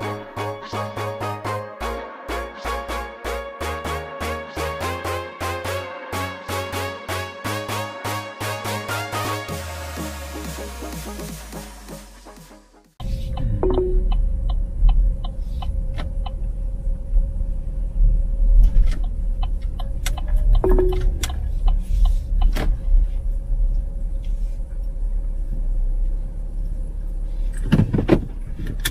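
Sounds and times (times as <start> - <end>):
car engine and road rumble: 13.0 - 28.9.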